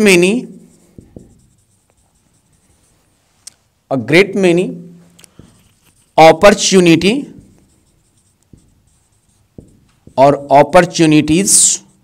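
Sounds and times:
marker scratching on whiteboard: 0.0s - 12.0s.

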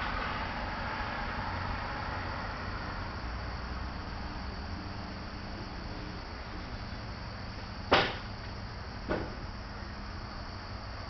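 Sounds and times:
steady background noise: 0.0s - 11.0s
sharp knocks: 7.9s - 8.4s, 9.0s - 9.5s.

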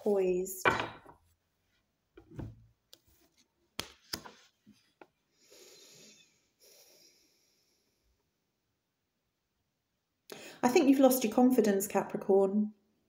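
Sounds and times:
cards rustling and sliding: 3.0s - 5.1s.

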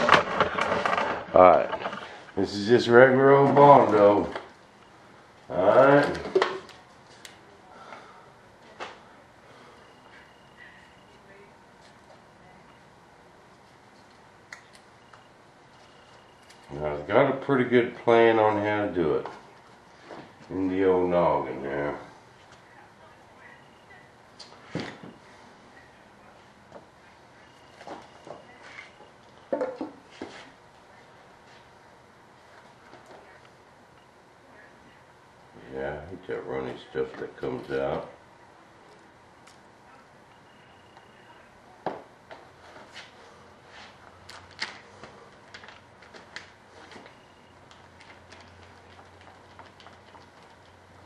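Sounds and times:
objects knocking and scraping on workbench: 0.0s - 2.2s, 29.5s - 30.4s
steady low hum: 0.0s - 51.0s.

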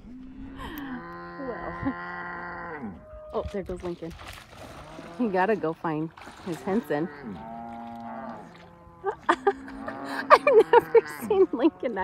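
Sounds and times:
cattle mooing: 0.0s - 3.4s, 6.5s - 12.0s.

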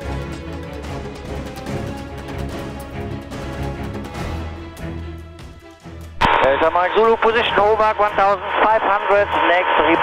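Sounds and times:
background music: 0.0s - 10.0s
radio speech: 6.2s - 10.0s.

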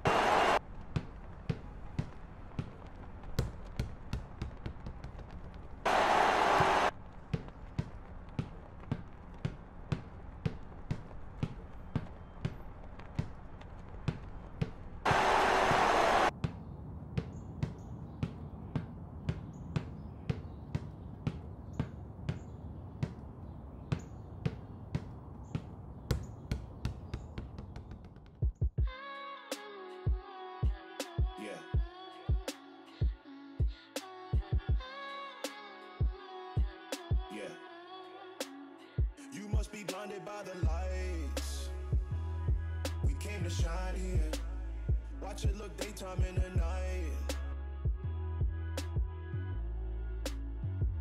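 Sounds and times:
basketball bouncing: 0.1s - 28.9s
deep thumps: 42.0s - 44.3s, 46.2s - 46.8s.

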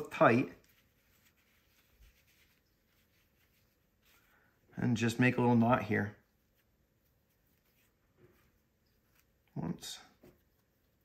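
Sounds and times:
yarn rustling: 0.0s - 11.0s.

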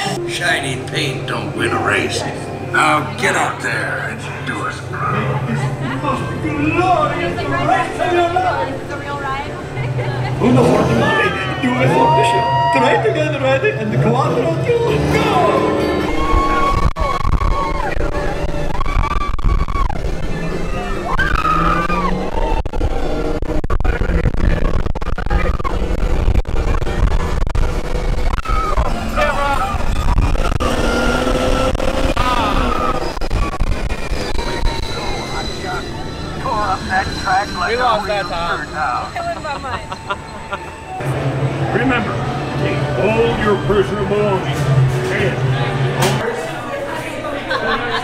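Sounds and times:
ride music: 0.0s - 34.0s
ride car rumbling: 0.0s - 48.0s.

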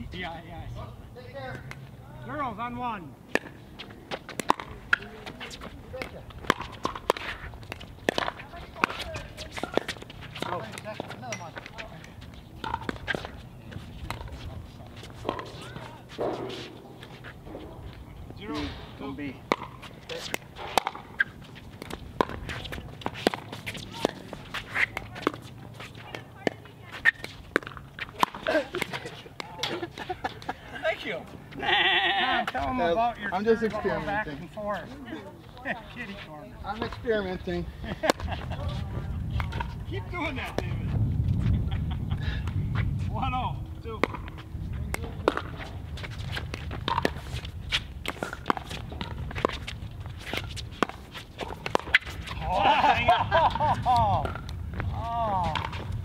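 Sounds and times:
laughter: 28.5s - 30.9s, 37.8s - 38.8s, 41.5s - 42.4s, 52.4s - 54.2s.

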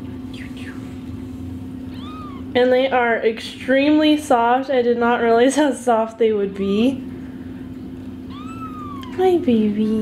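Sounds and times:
low hum: 0.0s - 5.3s
kitten mewing: 1.8s - 2.6s, 8.3s - 9.3s.

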